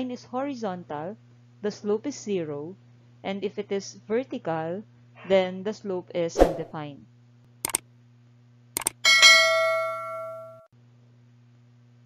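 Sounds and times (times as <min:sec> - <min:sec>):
notification bell ding: 0:08.8 - 0:10.6.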